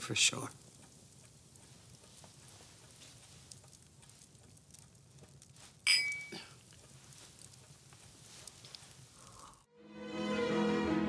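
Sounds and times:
glass tumblers clinking: 0:05.8 - 0:06.5.

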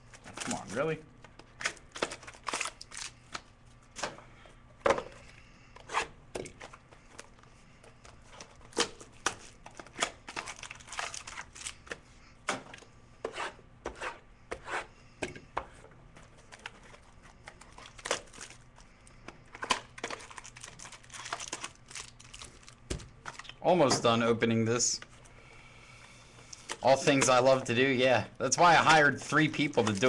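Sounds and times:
packaging tearing and crinkling: 0:01.6 - 0:03.2, 0:08.8 - 0:11.9, 0:17.6 - 0:18.6, 0:19.6 - 0:23.6, 0:28.8 - 0:30.0.

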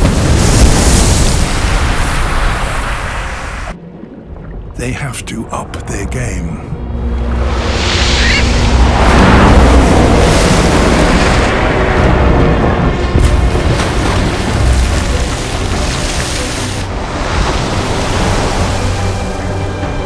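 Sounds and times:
dramatic background music: 0:00.0 - 0:20.0
water splashing and booming: 0:00.0 - 0:20.0.

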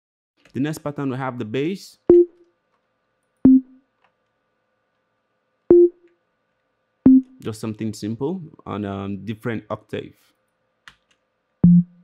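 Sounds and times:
synth bass notes: 0:11.6 - 0:12.0.

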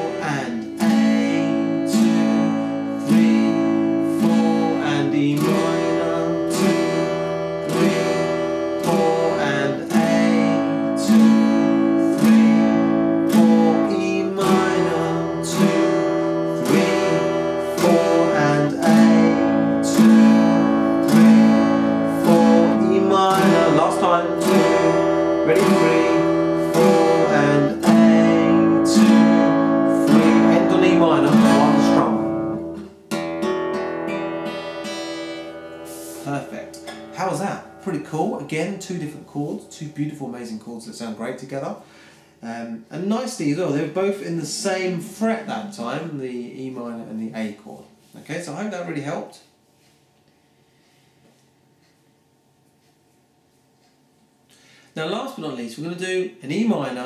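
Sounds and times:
acoustic guitar strummed: 0:00.0 - 0:42.8.

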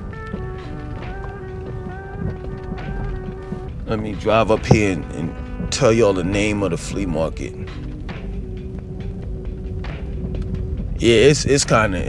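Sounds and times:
car engine and road rumble: 0:00.0 - 0:12.0
faint music steady note: 0:00.0 - 0:12.0.

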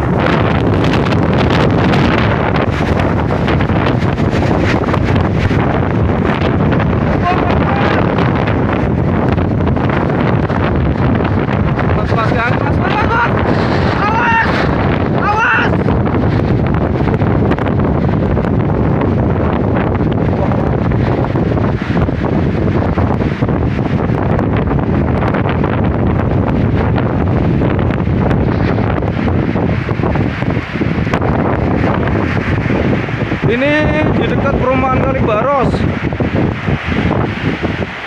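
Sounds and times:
wind buffeting microphone: 0:00.0 - 0:38.0
wind rushing: 0:00.0 - 0:38.0
wind-driven rain: 0:00.0 - 0:38.0.

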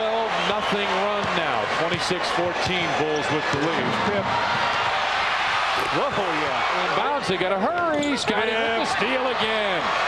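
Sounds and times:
arena crowd noise: 0:00.0 - 0:10.0
man commentating: 0:05.8 - 0:10.0.

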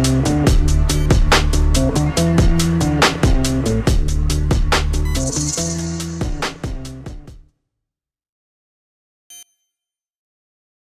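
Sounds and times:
short ding: 0:09.3 - 0:10.0.

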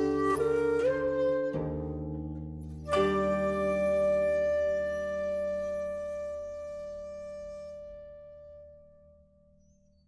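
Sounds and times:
plucked koto notes: 0:00.0 - 0:07.0.

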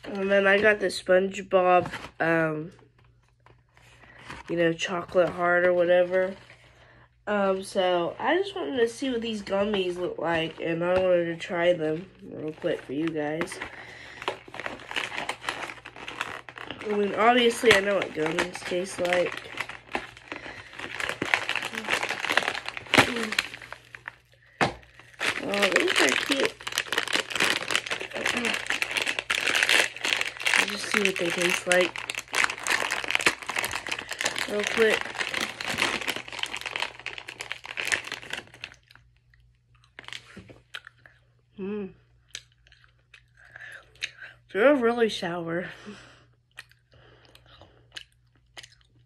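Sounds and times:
plastic bag crinkling: 0:07.5 - 0:39.1, 0:39.8 - 0:40.7
wet chewing: 0:46.5 - 0:49.0.

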